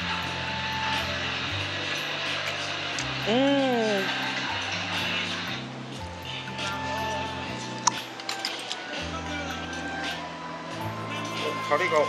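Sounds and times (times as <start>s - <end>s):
background music with bassline: 0.0s - 8.3s, 9.0s - 12.0s.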